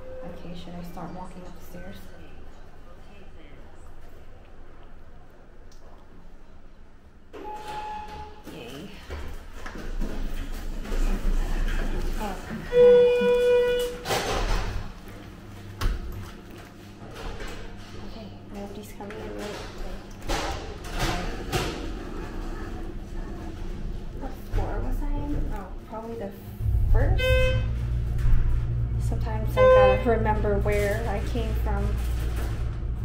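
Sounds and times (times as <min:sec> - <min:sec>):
elevator doors sliding open: 0:07.4 - 0:08.4.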